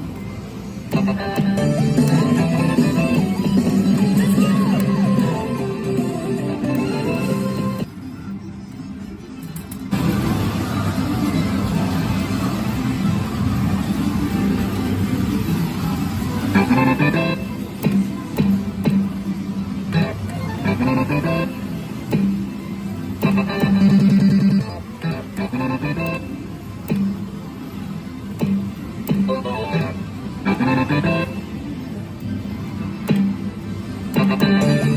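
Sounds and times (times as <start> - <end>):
music: 0.0 - 34.9
gaming hall din: 0.8 - 7.9
background music: 0.8 - 8.0, 19.9 - 22.5, 28.4 - 31.4, 34.0 - 34.9.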